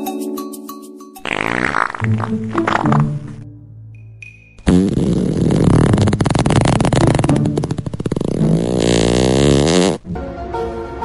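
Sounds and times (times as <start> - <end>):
long rattling fart sound: 1.2 - 3.1, 4.6 - 10.0.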